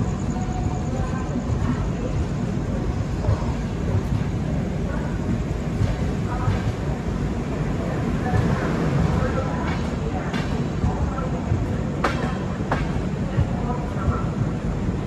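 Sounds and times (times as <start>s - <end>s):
train wheels rumbling on track: 0.0s - 15.0s.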